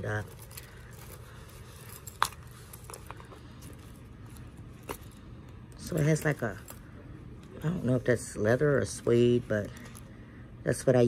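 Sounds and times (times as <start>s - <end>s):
faint handling: 0.0s - 8.2s.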